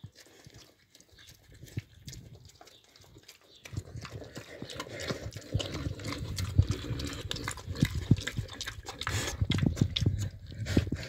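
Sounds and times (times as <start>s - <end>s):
pig chewing and slurping: 0.0s - 11.0s.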